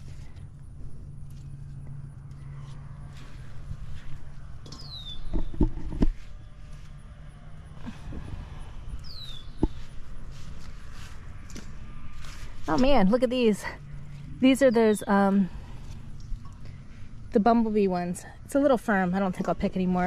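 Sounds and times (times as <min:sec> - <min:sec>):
steady low hum: 0:00.0 - 0:20.0
leaves and stems rustling: 0:09.0 - 0:18.0.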